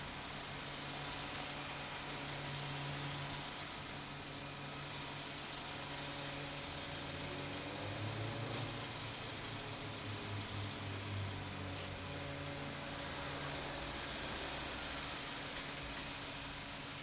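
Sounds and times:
steady hiss: 0:11.6 - 0:12.4.

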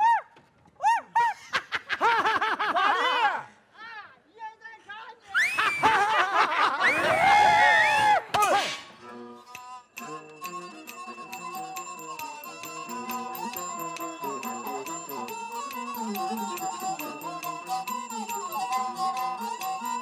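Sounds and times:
opera vocal calls: 0:09.1 - 0:20.0
voices calling out together: 0:09.4 - 0:20.0
folk band playing: 0:10.0 - 0:20.0.

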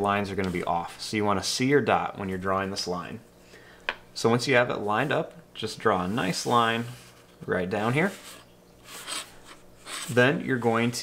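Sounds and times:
plastic ruler rubbing on paper: 0:08.0 - 0:10.2.

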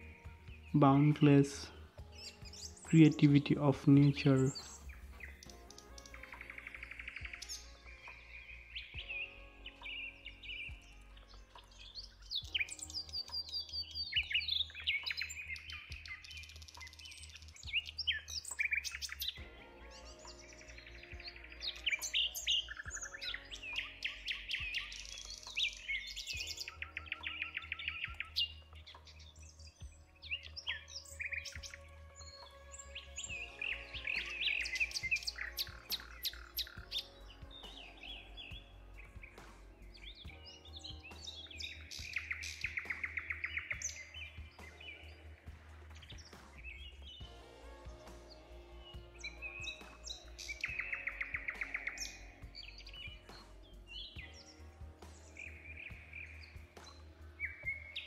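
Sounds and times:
soft background music: 0:00.0 - 0:58.0
songbirds chirping and trilling: 0:00.0 - 0:58.0.

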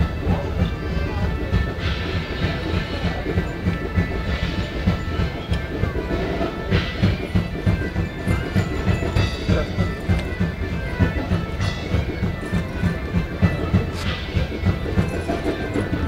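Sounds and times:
repeating drum beat: 0:00.0 - 0:16.0
sustained drone tones: 0:00.0 - 0:16.0.

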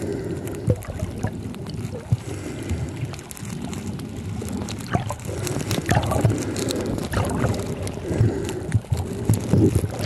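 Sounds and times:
faint clicks and pops: 0:00.0 - 0:10.0
water sloshing and bubbling: 0:00.0 - 0:10.0.

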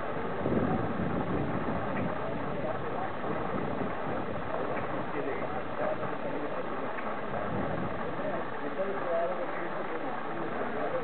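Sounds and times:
outdoor noise rush: 0:00.0 - 0:11.0.

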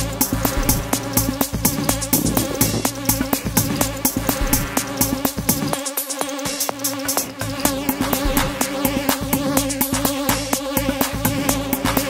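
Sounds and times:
kick drum: 0:00.0 - 0:05.7
ticking hi-hats: 0:00.0 - 0:12.0
held synth tone: 0:01.8 - 0:04.0.

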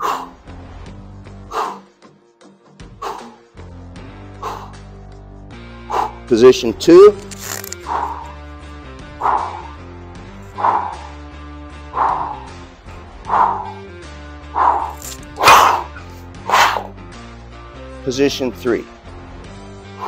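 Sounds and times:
man breathing forcefully: 0:00.0 - 0:00.6, 0:01.3 - 0:02.1, 0:02.8 - 0:05.0, 0:05.7 - 0:06.3, 0:07.8 - 0:16.9
background music: 0:00.0 - 0:20.0.

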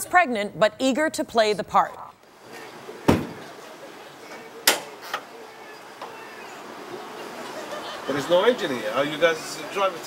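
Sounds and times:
car hood swung open: 0:03.1 - 0:03.4.

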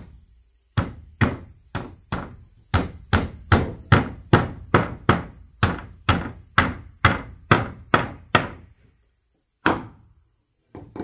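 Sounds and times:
hammer striking wood: 0:00.8 - 0:08.7, 0:09.6 - 0:10.0.

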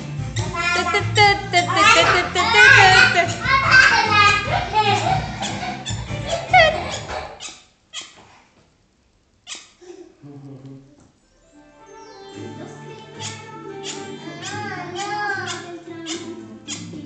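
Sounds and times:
children's song from television: 0:00.0 - 0:07.4, 0:10.9 - 0:17.0.

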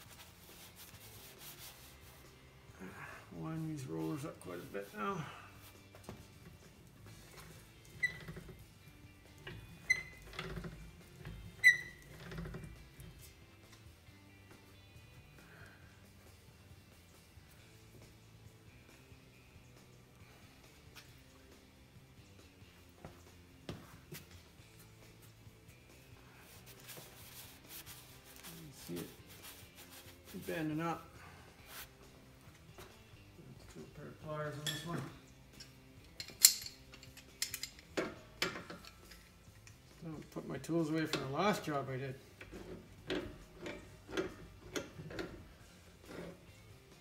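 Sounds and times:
faint background music: 0:00.0 - 0:47.0
handling rustle and clatter: 0:26.3 - 0:30.8, 0:35.6 - 0:45.4.

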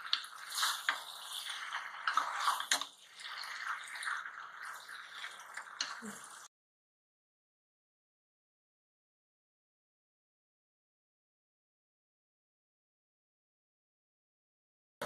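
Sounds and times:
spatula stirring food in pan: 0:00.0 - 0:06.5.

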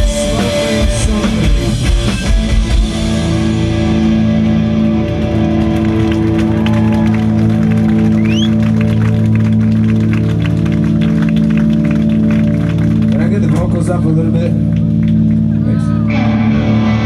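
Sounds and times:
electric guitars sustained chord: 0:00.0 - 0:17.0
crowd clapping: 0:03.9 - 0:16.2
rising whistle: 0:07.8 - 0:08.8.

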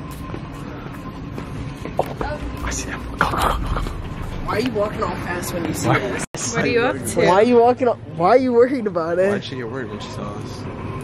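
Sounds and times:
store background noise: 0:00.0 - 0:11.0.

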